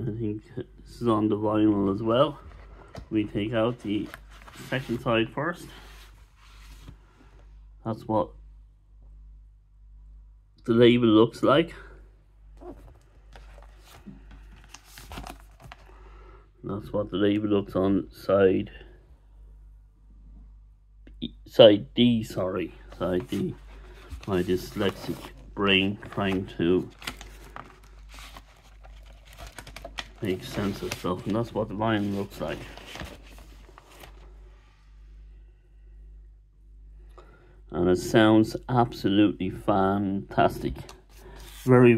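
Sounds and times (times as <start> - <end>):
room hum: 0.0 - 41.9
record sleeve rustling: 2.0 - 7.0, 12.6 - 15.9, 22.8 - 34.5
vinyl record sliding from sleeve: 2.5 - 7.0, 30.3 - 34.2.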